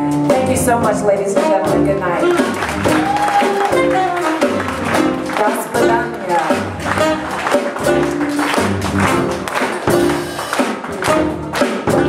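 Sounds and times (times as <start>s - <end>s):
jazz band playing: 0.0s - 12.0s
alto saxophone: 2.2s - 10.2s, 11.0s - 12.0s.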